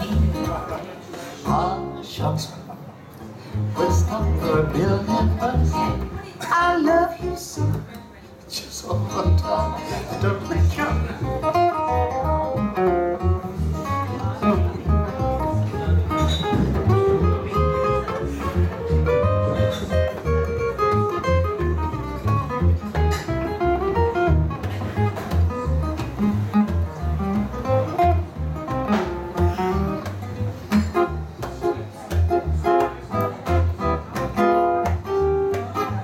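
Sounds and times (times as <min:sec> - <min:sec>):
plucked double bass walking line: 0:00.0 - 0:02.5, 0:03.2 - 0:08.1, 0:08.8 - 0:36.0
guitar melody: 0:00.0 - 0:02.6, 0:03.2 - 0:36.0.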